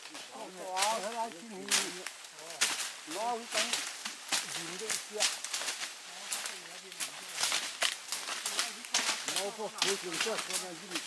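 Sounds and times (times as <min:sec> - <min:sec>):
people talking: 0:00.0 - 0:05.4, 0:06.1 - 0:07.6, 0:08.4 - 0:11.0
twigs and leaves crackling underfoot: 0:00.0 - 0:11.0.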